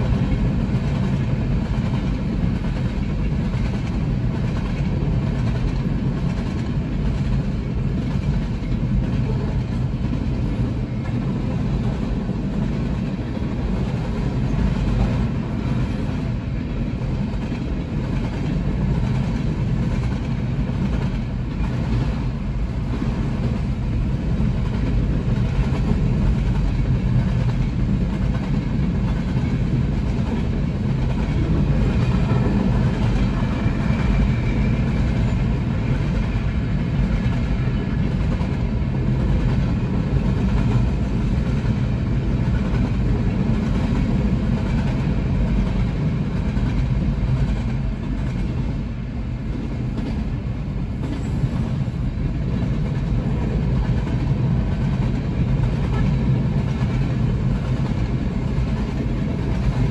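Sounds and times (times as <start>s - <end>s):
train wheels rumbling on rails: 0.0s - 59.9s.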